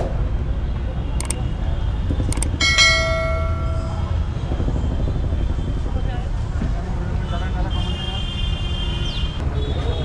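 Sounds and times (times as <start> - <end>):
street and traffic noise: 0.0 - 10.0
double mouse click: 1.2 - 1.4
notification bell ding: 2.6 - 4.2.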